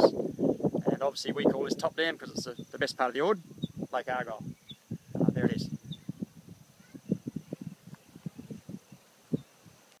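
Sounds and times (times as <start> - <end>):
high-pitched insect drone: 1.9 - 8.8.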